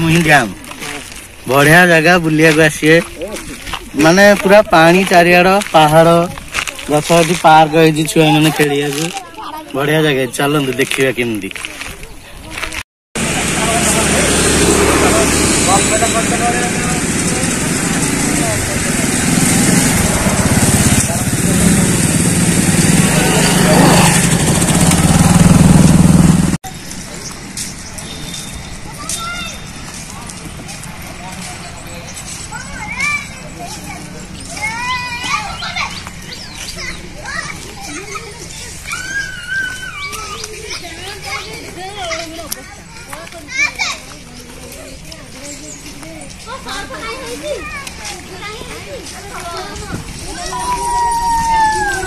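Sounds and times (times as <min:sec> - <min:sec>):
children chattering and calling: 0:00.0 - 0:25.4, 0:26.7 - 0:52.0
steady noisy rush: 0:13.2 - 0:26.6
vehicle engine running: 0:13.2 - 0:28.0
child's high-pitched call: 0:28.8 - 0:29.8, 0:38.8 - 0:40.5, 0:50.3 - 0:52.0.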